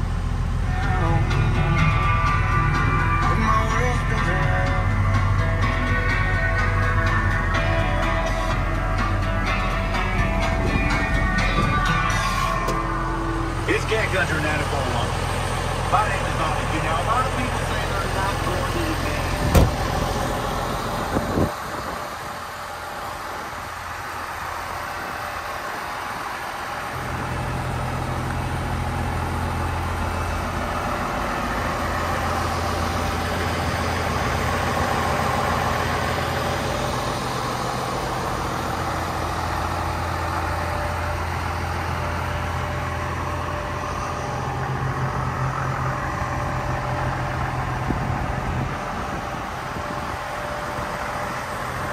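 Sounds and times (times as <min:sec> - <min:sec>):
tractor diesel engine idling: 0:00.0 - 0:51.9.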